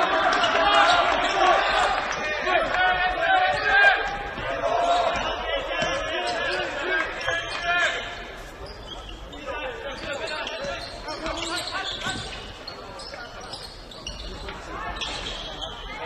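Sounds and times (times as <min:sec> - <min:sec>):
people shouting: 0:00.0 - 0:07.0.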